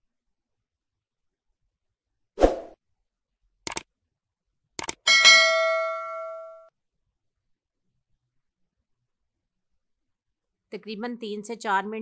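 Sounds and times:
double clicks: 3.7s - 3.9s, 4.8s - 5.0s
bell-like ding: 5.1s - 6.7s.

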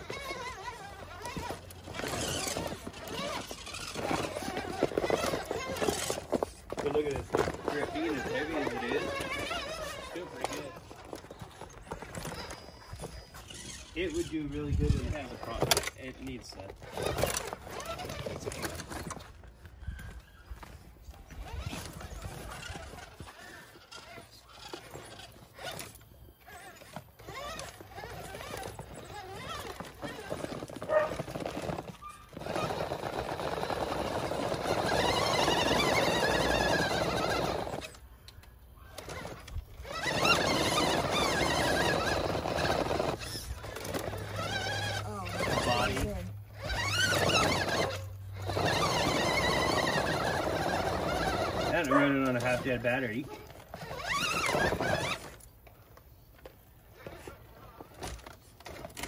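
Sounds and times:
electric motor and gears whining: 0.0s - 59.0s.

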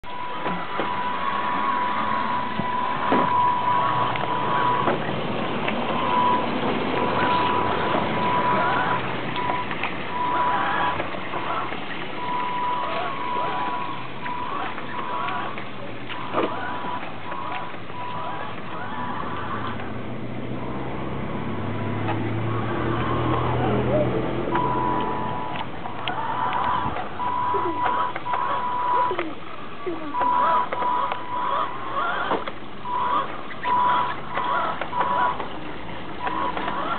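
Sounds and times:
electric motor whine: 0.0s - 20.0s, 20.6s - 29.2s, 36.1s - 36.9s.

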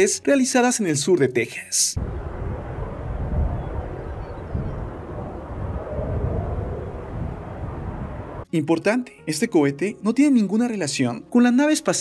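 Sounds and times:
distant rocket engine rumble: 2.0s - 8.5s.

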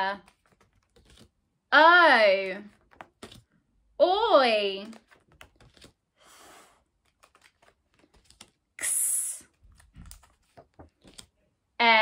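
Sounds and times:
flashcards being flicked: 0.2s - 1.4s, 2.7s - 3.6s, 4.8s - 6.0s, 6.9s - 8.7s, 9.5s - 11.4s.

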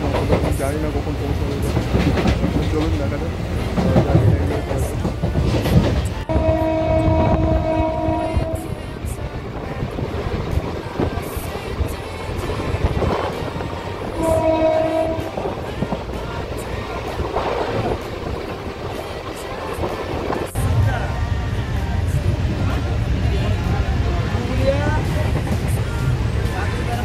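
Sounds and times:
moving train rumble and rattle: 0.0s - 27.0s
train horn blasts: 6.3s - 8.9s, 14.1s - 15.5s.

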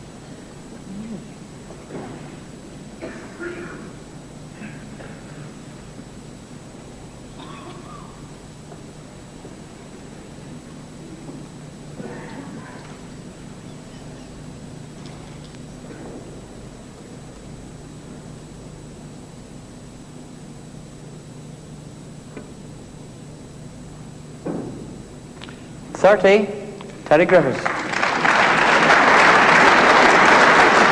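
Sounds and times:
low hum and hiss: 0.0s - 30.9s.

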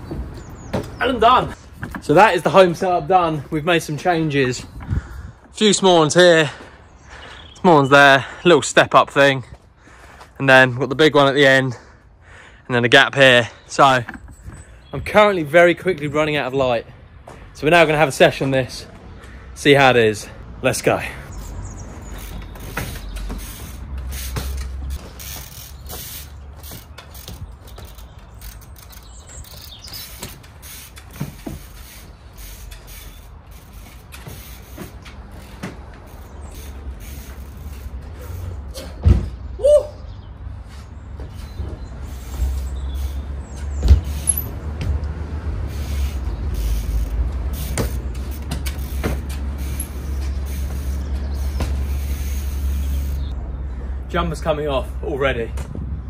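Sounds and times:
bike knocking on wood: 0.0s - 1.1s, 22.0s - 32.0s, 32.7s - 37.6s, 38.8s - 39.4s, 43.6s - 45.1s, 47.0s - 52.4s
bike landing thuds: 0.1s - 1.2s, 22.0s - 31.8s, 33.8s - 36.0s, 38.8s - 39.6s, 43.6s - 45.0s, 47.5s - 52.4s
pallets creaking: 21.4s - 39.4s, 41.1s - 53.3s.

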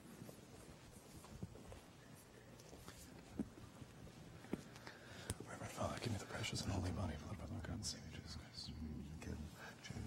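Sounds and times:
faint hushed speech: 5.4s - 10.0s.

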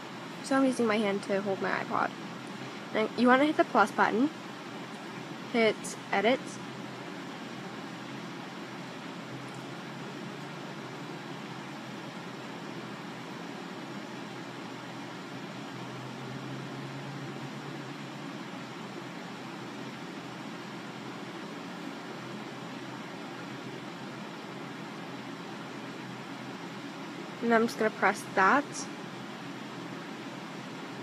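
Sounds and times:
faint low hum: 0.0s - 31.0s
room noise hiss: 0.0s - 31.0s.

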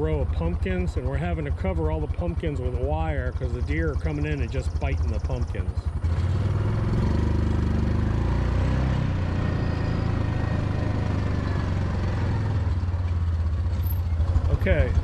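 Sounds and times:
small engine running: 0.0s - 15.0s.

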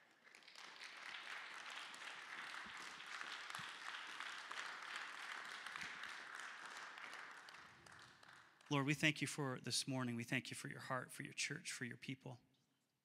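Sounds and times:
crowd applauding: 0.0s - 9.4s.

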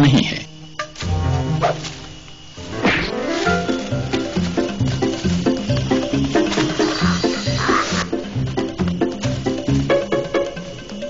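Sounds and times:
background music with steady beat: 0.8s - 11.0s.

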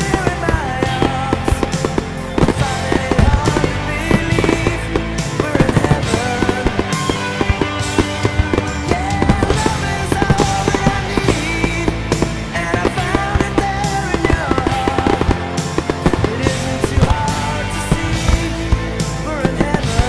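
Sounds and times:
fireworks bursting and crackling: 0.0s - 20.0s
loud music: 0.0s - 20.0s.

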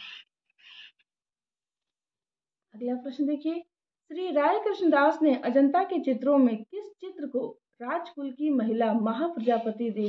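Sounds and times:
person speaking: 9.2s - 10.0s.

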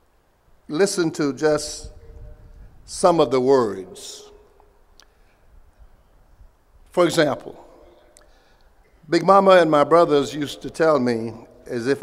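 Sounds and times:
faint background noise: 0.0s - 12.0s
man speaking: 0.7s - 2.2s, 2.9s - 4.4s, 6.9s - 8.0s, 9.0s - 12.0s.

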